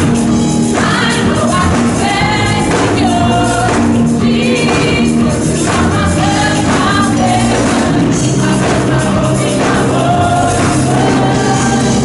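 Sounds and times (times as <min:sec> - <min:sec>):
band with repeating bass line: 0:00.0 - 0:12.0
gospel voices singing: 0:00.0 - 0:12.0.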